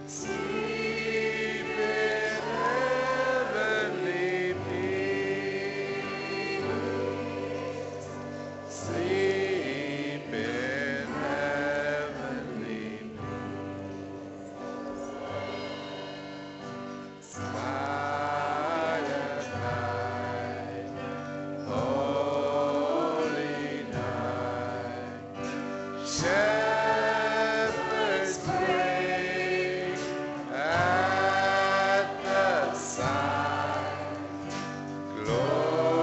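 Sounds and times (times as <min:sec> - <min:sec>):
drums: 0:00.0 - 0:36.0
electric guitar chords: 0:00.0 - 0:36.0
piano chords: 0:00.0 - 0:36.0.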